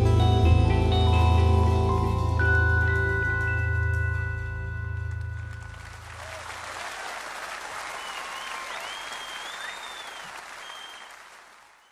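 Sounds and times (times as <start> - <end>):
audience applause: 5.2 - 11.9
crowd whistling: 6.0 - 11.9.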